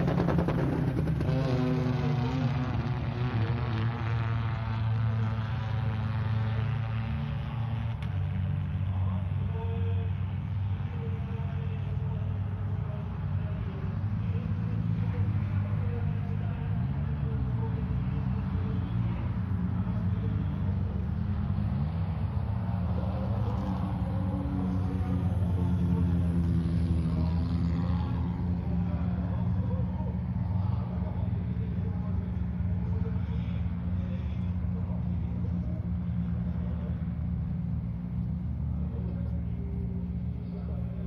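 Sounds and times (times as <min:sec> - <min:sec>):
rally car engine running: 0:00.0 - 0:41.0.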